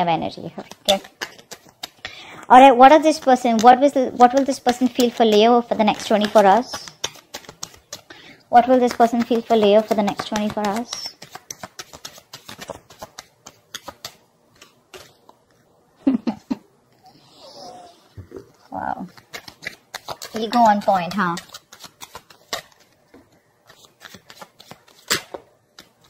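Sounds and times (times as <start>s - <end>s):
cards being shuffled: 0.6s - 2.2s, 2.9s - 15.6s, 18.5s - 26.0s.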